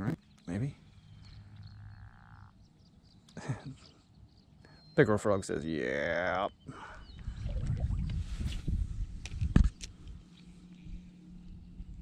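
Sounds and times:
frog croaking: 0:01.4 - 0:02.7.

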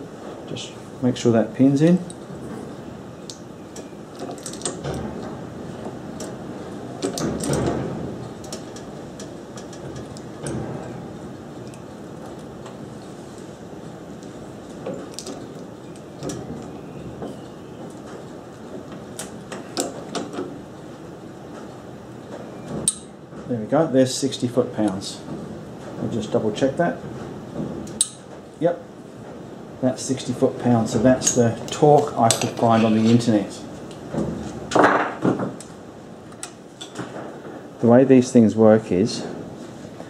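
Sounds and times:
metal-on-metal handling: 0:03.7 - 0:05.4, 0:31.2 - 0:33.4.

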